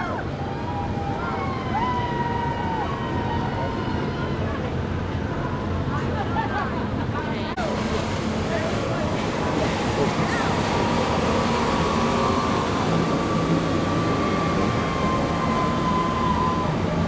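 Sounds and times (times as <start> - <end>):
wind and sea water rushing: 0.0 - 17.0.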